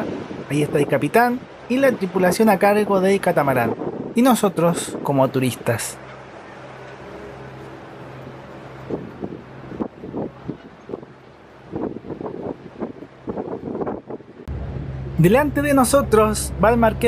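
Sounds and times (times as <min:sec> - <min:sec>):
wind across microphone: 0:00.0 - 0:15.2
boat engines droning: 0:00.0 - 0:17.0.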